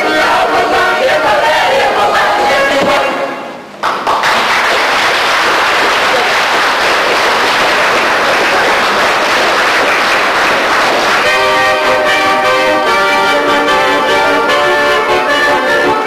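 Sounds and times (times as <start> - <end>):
audience applause: 3.8 - 11.6.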